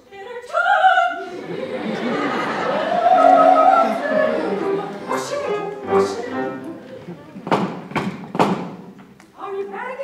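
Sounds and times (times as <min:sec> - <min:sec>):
knocks on wooden door: 0:07.5 - 0:08.8.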